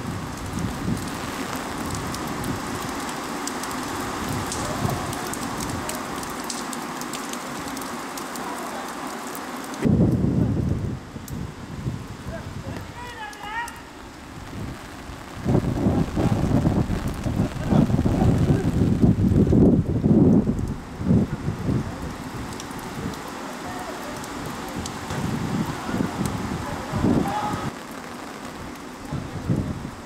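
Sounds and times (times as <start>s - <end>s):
wind buffeting microphone: 0.0s - 3.0s, 9.8s - 13.0s, 14.2s - 23.3s, 24.1s - 27.7s, 28.6s - 30.0s
faint shouts of players: 27.2s - 27.7s.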